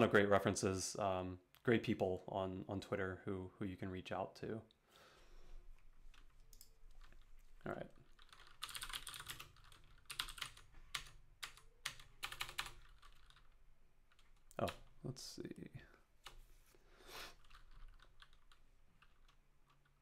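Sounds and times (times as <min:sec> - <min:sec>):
computer keyboard typing: 0:06.1 - 0:07.3, 0:08.0 - 0:15.0, 0:17.4 - 0:20.0.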